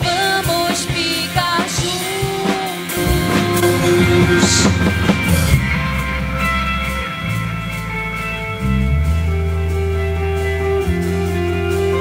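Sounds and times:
electric guitar: 0.0s - 12.0s
live rock band: 0.0s - 12.0s.

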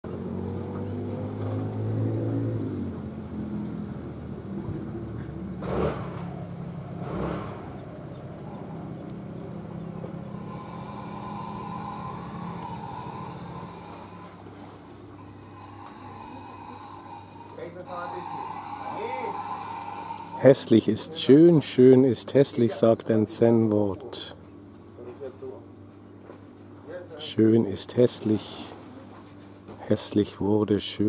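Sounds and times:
engine running: 0.0s - 21.6s.

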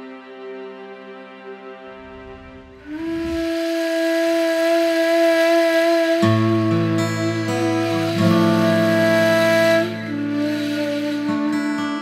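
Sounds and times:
flute sustained note: 1.9s - 12.0s.

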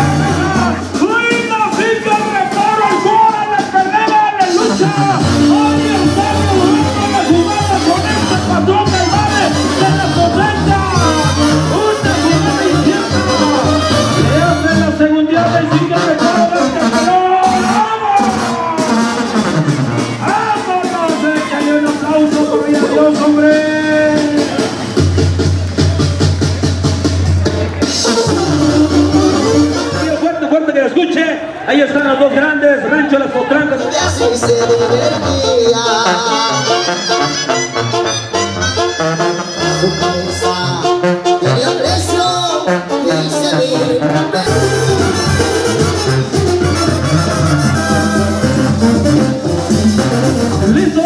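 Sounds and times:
tuba bass line: 0.0s - 1.4s, 4.4s - 30.5s, 33.6s - 51.0s
drums beating: 0.0s - 30.5s, 44.2s - 51.0s
brass band playing: 0.0s - 31.6s, 33.3s - 51.0s.

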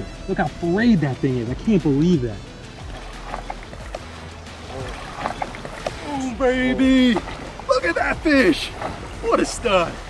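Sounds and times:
background music: 0.0s - 10.0s
water sloshing and splashing: 1.0s - 10.0s.

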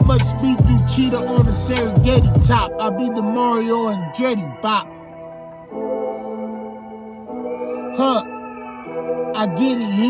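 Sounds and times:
instrumental rap backing chords: 0.0s - 10.0s.

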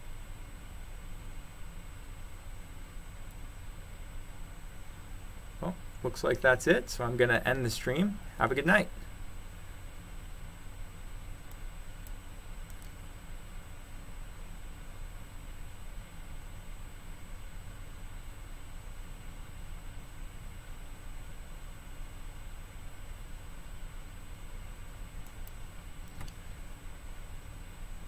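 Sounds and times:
low rumble and hiss: 0.0s - 28.0s
faint clicks: 11.4s - 13.0s, 25.2s - 26.4s.

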